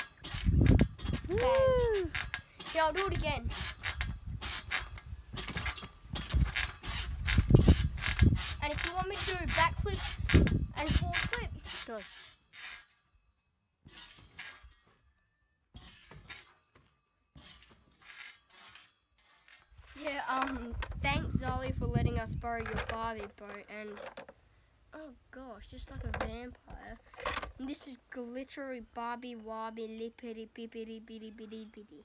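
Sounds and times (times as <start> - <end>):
trampoline springs clinking: 0.0 - 24.2.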